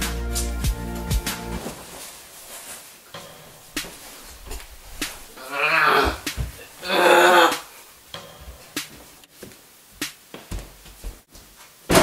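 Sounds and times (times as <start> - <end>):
boy groaning yell: 5.4 - 7.7.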